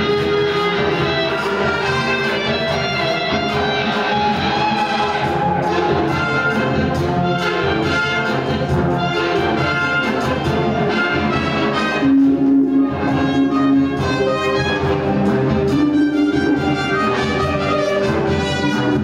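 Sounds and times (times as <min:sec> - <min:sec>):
electric guitar with orchestra: 0:00.0 - 0:19.0.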